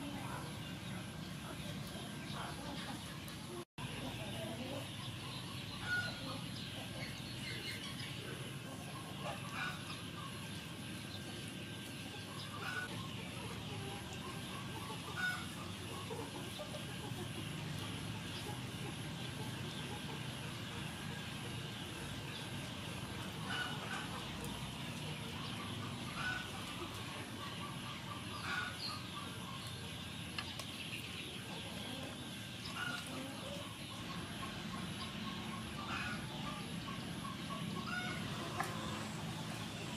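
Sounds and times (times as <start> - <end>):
chickens clucking: 0.0 - 39.9
outdoor background hiss: 0.0 - 39.9.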